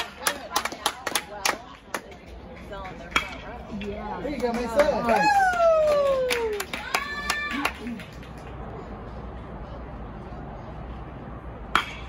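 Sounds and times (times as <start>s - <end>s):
metal bat hitting ball: 11.7s - 12.0s.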